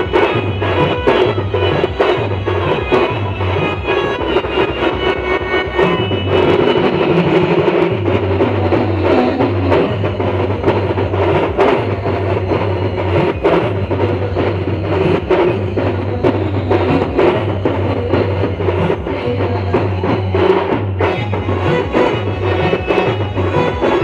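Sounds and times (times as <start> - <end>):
fast percussion beat: 0.0 - 24.0.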